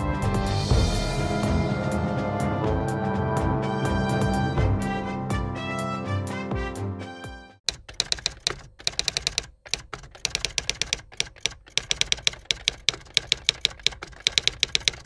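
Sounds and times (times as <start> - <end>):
short music tail: 0.0 - 6.4
keyboard typing: 7.7 - 15.0.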